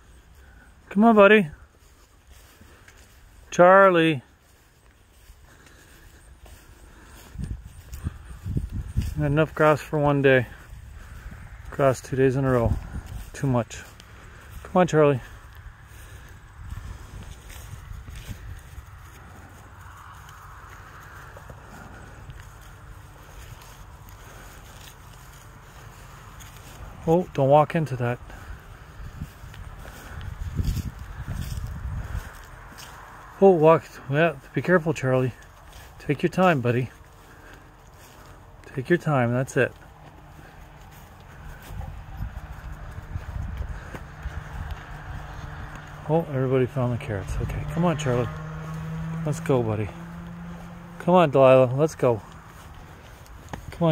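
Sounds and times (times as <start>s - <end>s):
footsteps on grass: 0.0s - 53.9s
wind rumble on microphone: 7.3s - 9.3s, 10.6s - 11.8s, 12.6s - 13.4s, 15.4s - 23.0s, 28.2s - 33.3s, 40.7s - 46.0s.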